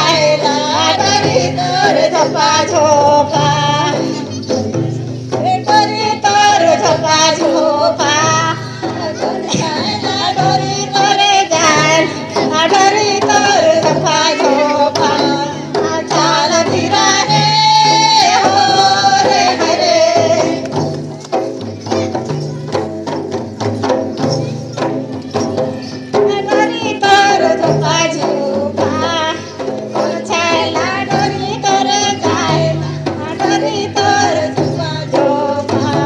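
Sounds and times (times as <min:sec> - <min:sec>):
high voices singing in chorus: 0:00.0 - 0:21.1, 0:26.1 - 0:36.0
hand-beaten barrel drums: 0:00.0 - 0:36.0
instrumental accompaniment: 0:00.0 - 0:36.0.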